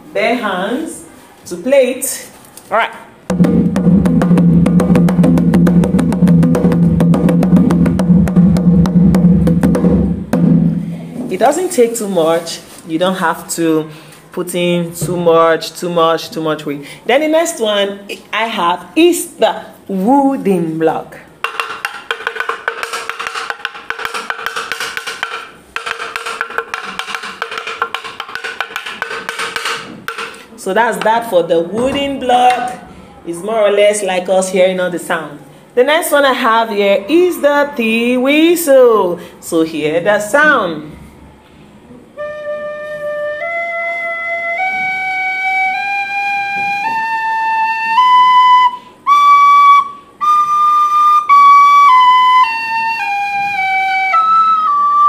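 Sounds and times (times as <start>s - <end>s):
wood block knocks: 3.3s - 11.0s, 21.4s - 30.4s
conga drum hand strokes: 3.3s - 11.4s, 21.4s - 30.6s.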